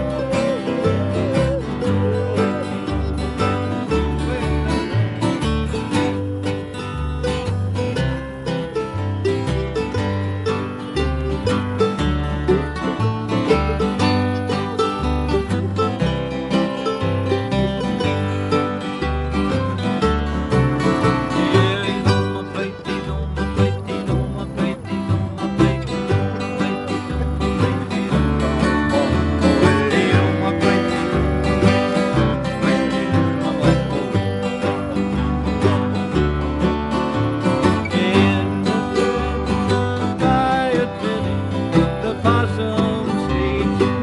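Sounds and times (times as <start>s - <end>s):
acoustic guitar picking: 0.0s - 44.0s
mandolin picking: 0.0s - 44.0s
plucked upright bass: 0.0s - 44.0s.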